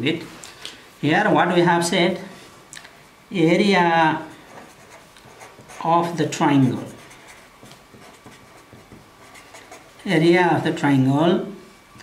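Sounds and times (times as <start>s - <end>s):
marker pen scratching on paper: 4.5s - 10.2s.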